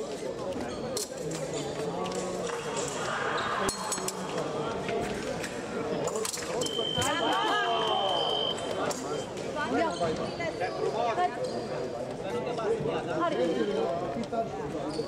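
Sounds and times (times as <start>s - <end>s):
voices in hall: 0.0s - 15.0s
scoring machine high beep: 6.6s - 8.8s.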